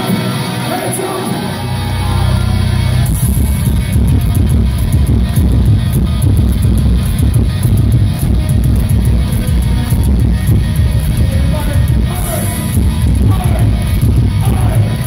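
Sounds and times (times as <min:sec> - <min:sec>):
heavy metal band playing live: 0:00.0 - 0:15.0.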